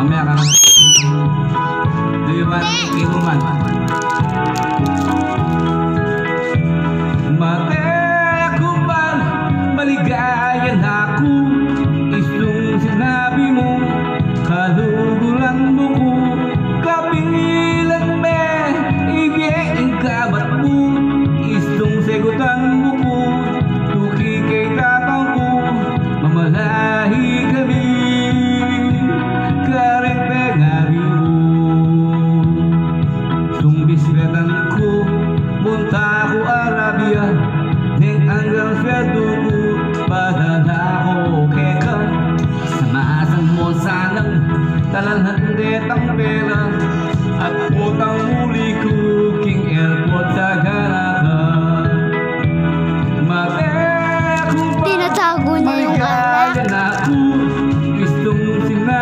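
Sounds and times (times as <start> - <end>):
man singing into a microphone: 0.0 - 1.2, 7.1 - 52.2, 53.1 - 59.0
karaoke backing track: 0.0 - 59.0.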